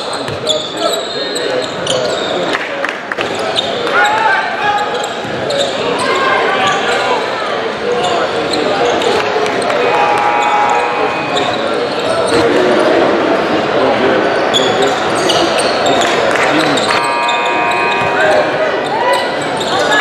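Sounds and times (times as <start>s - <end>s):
sneakers squeaking: 0.0s - 2.4s, 3.2s - 7.2s, 7.9s - 12.6s, 14.5s - 20.0s
crowd chatter in gym: 0.0s - 20.0s.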